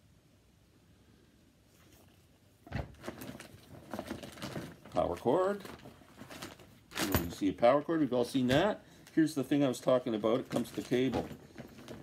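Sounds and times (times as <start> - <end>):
packaging rustling: 2.7 - 7.6, 8.3 - 12.0.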